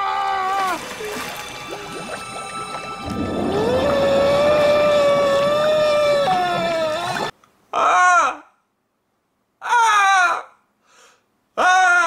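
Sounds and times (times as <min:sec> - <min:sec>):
man screaming in horror: 0:03.4 - 0:08.5, 0:09.6 - 0:10.6, 0:11.6 - 0:12.0.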